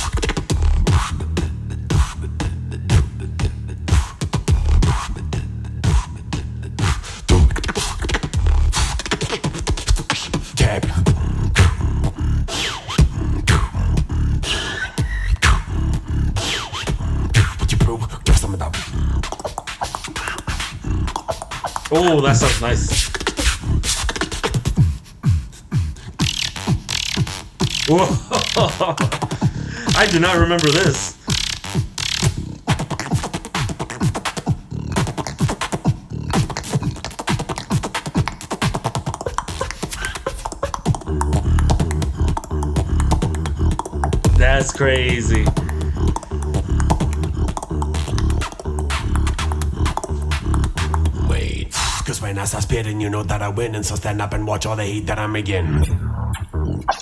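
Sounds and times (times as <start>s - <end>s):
beatboxing clicks: 0.0s - 53.1s, 56.0s - 57.0s
hissy high beatbox sounds: 0.0s - 53.1s
beatboxing bass drops: 0.0s - 57.0s
wavering voiced tones: 26.2s - 32.3s, 39.0s - 52.0s.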